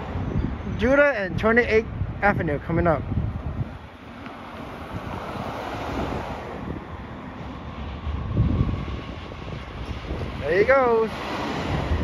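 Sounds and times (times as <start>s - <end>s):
street traffic noise: 0.0s - 12.0s
wind buffeting microphone: 0.0s - 12.0s.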